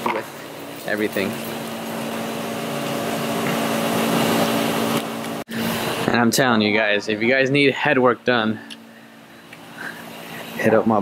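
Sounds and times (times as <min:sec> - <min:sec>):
motor machine humming and rushing: 0:01.2 - 0:06.2.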